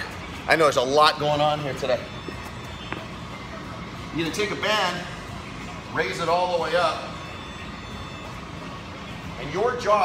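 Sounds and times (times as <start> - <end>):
gym room rumble and hum: 0.0 - 10.0.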